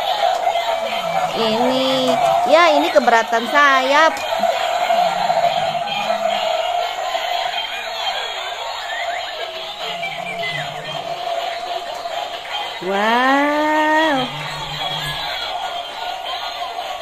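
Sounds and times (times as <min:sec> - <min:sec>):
synthetic toy voices: 0:00.0 - 0:17.0
tinny electronic toy music: 0:00.0 - 0:17.0.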